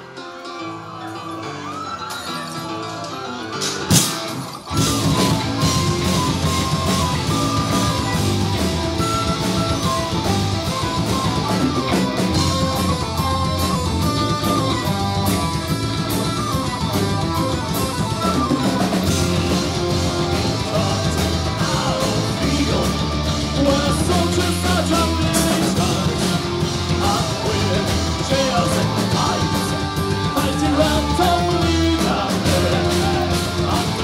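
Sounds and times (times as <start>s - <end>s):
guitars: 0.0s - 34.0s
metal band playing live: 0.0s - 34.0s
drum kit: 3.6s - 34.0s
high melody line: 4.7s - 34.0s.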